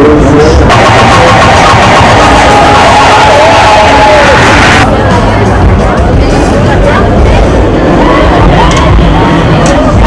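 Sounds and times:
crowd noise: 0.0 - 10.0
fairground ride din: 0.0 - 10.0
loud fairground music: 0.0 - 10.0
steady high tone: 0.6 - 5.0.

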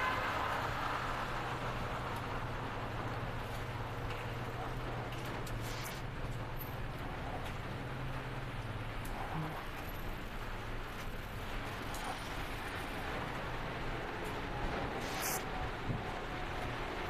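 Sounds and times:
car engines idling: 0.0 - 17.0
traffic hiss: 5.2 - 7.4, 8.0 - 17.0.

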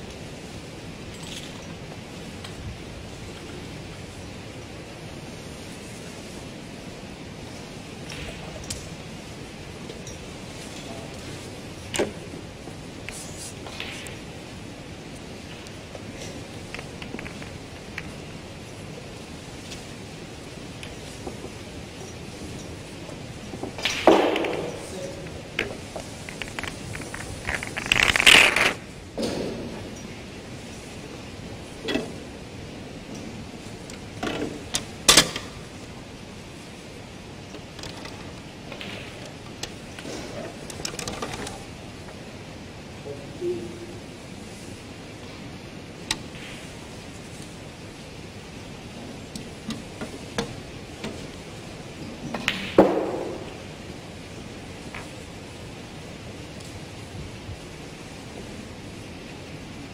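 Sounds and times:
snooker balls clicking: 15.2 - 18.4, 19.7 - 30.0, 37.1 - 42.3, 49.1 - 54.0.

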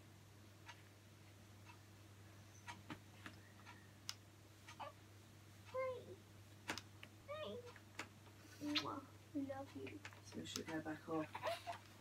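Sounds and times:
faint clicks and knocks: 0.6 - 1.9, 2.5 - 4.9, 6.5 - 12.0
baby cooing: 4.8 - 5.0, 11.3 - 11.9.

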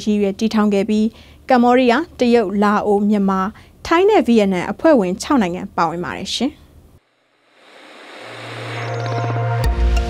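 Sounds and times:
rising whoosh riser: 7.0 - 10.0.

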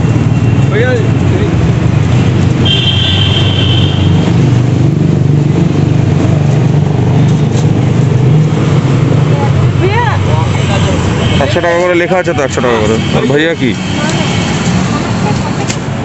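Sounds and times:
market bustle: 0.0 - 16.0
street traffic rumble: 0.0 - 16.0.

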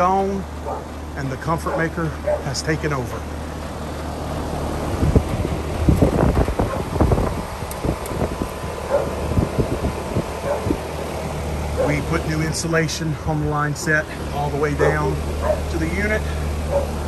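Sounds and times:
air conditioner hum: 0.0 - 17.0
wind buffeting microphone: 4.8 - 11.0.

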